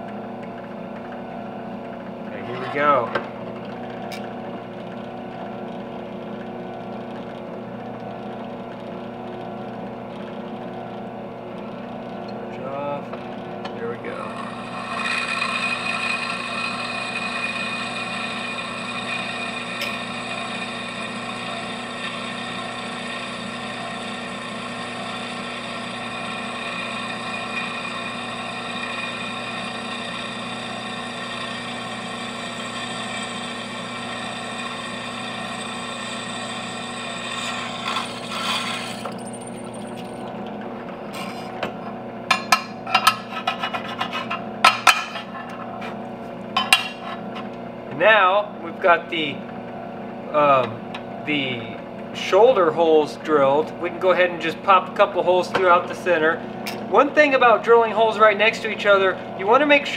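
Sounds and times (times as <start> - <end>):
drill press motor running: 0.0 - 42.9, 45.2 - 59.9
drill bit cutting brass: 14.0 - 40.2.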